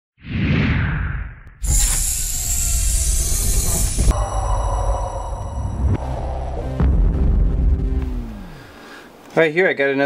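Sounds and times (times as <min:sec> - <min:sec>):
whoosh: 0:00.2 - 0:08.6
loud hissing burst: 0:01.6 - 0:06.6.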